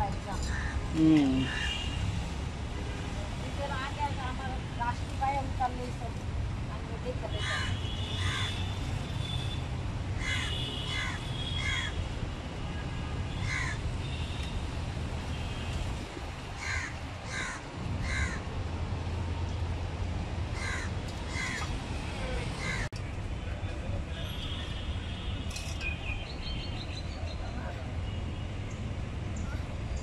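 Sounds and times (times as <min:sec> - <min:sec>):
crows cawing: 0:07.4 - 0:08.6, 0:10.2 - 0:12.0, 0:13.5 - 0:13.8, 0:16.6 - 0:18.4, 0:20.6 - 0:21.7, 0:22.6 - 0:22.9.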